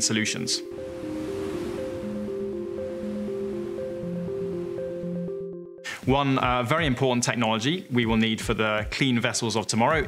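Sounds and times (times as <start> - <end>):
background music: 0.0 - 10.0
sea waves rushing: 0.4 - 5.6.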